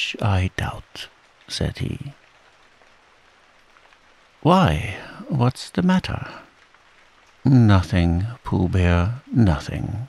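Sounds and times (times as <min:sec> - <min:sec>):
faint steady rain: 0:00.0 - 0:10.0.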